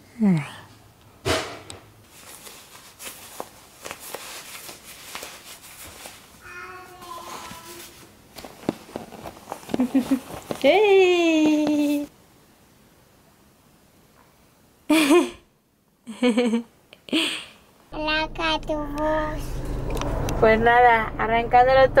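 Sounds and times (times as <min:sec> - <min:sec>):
cloth diaper rustling: 0:02.1 - 0:10.9.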